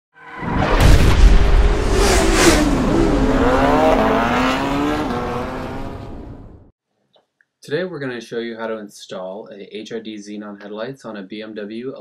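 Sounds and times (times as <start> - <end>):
sharp whooshes: 0.6 - 5.0
deep rumble: 0.8 - 3.9.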